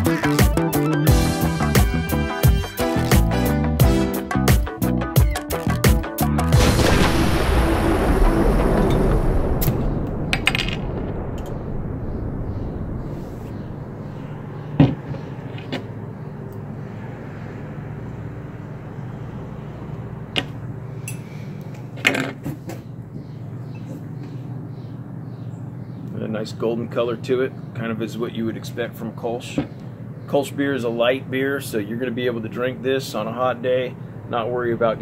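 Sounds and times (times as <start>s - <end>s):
music ending on heavy hit: 0.1s - 10.3s.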